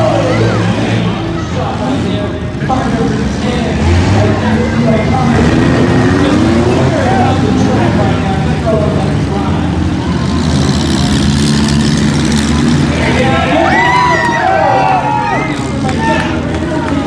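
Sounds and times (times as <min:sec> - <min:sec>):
car engines running loudly: 0:00.0 - 0:17.0
people shouting: 0:12.9 - 0:16.4.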